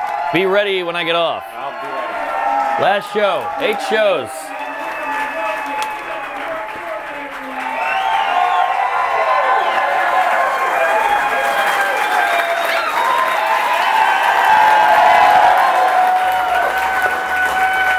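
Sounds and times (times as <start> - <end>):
audience applauding: 0.0 - 17.9
crowd cheering and whooping: 0.0 - 17.9.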